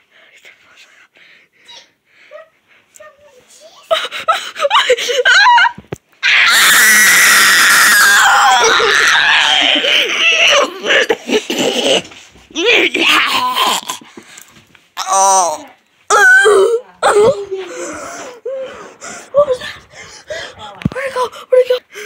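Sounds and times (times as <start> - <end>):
person screaming: 6.2 - 10.9, 12.7 - 14.0, 15.0 - 16.8.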